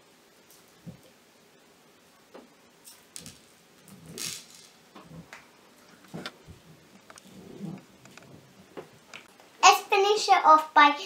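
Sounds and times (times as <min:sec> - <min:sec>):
rustling scrape: 0:03.2 - 0:05.3, 0:05.9 - 0:08.6.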